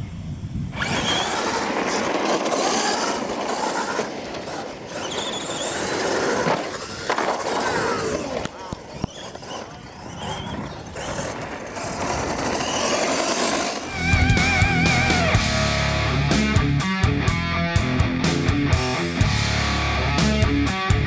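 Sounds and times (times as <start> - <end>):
toy truck motors whining: 0.7 - 15.4
rock music with heavy bass: 13.9 - 21.0.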